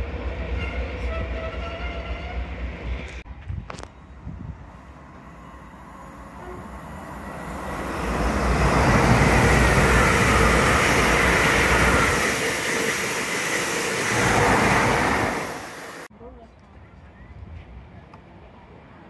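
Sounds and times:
high-speed train passing: 0:00.0 - 0:16.1.

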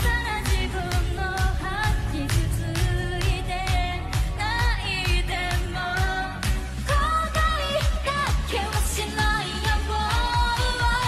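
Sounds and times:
steady drum beat: 0:00.0 - 0:11.0
upbeat pop song: 0:00.0 - 0:11.0
woman singing: 0:00.0 - 0:11.0.

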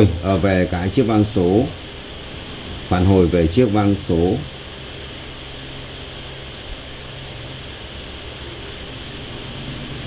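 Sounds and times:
background hiss: 0:00.0 - 0:10.0
low even hum: 0:00.0 - 0:10.0.

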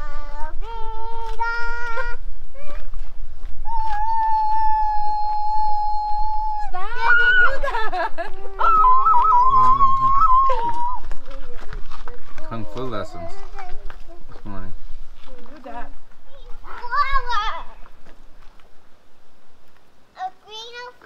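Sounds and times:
child singing: 0:00.0 - 0:02.8.

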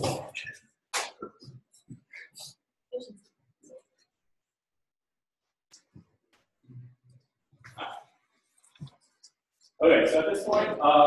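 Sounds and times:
man speaking: 0:09.8 - 0:11.0.

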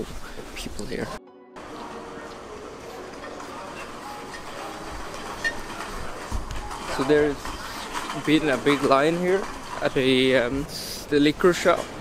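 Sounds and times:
indoor shopping mall background noise: 0:00.0 - 0:12.0.

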